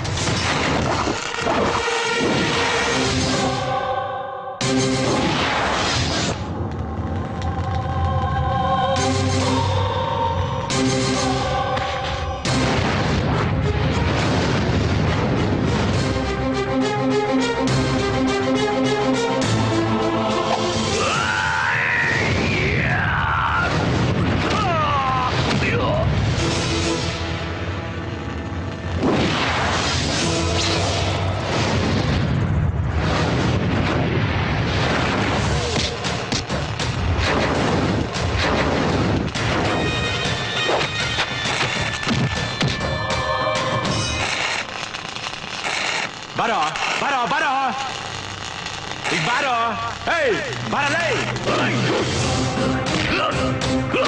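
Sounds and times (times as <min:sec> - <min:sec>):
dramatic background music: 0:00.0 - 0:45.2, 0:50.0 - 0:54.0
heavy boom crash effect: 0:12.5 - 0:16.2
dense rumbling noise: 0:12.6 - 0:16.2, 0:31.0 - 0:39.8.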